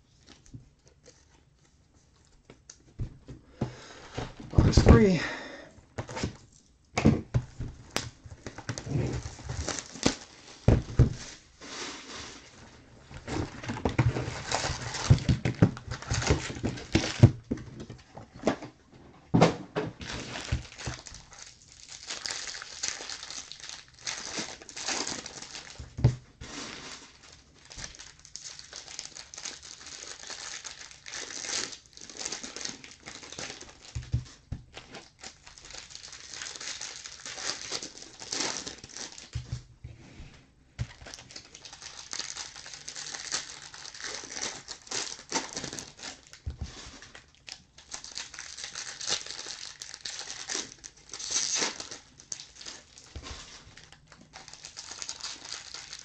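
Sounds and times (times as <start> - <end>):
plastic wrappers crinkling: 0.0 - 2.9, 7.6 - 11.6, 12.4 - 18.6, 20.0 - 39.7, 40.8 - 56.0.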